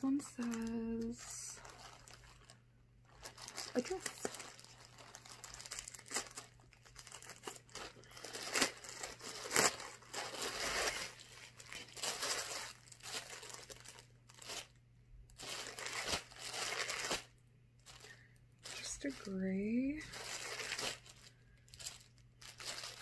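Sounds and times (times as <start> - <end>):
plastic packaging crinkling: 0.0 - 23.0.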